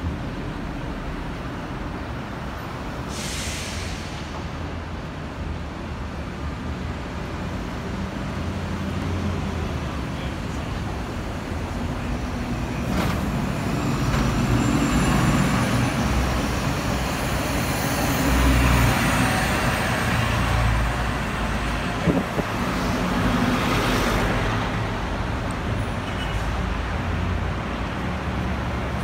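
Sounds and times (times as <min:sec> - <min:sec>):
bus engine rumble: 0:00.0 - 0:29.0
city traffic noise: 0:00.0 - 0:29.0.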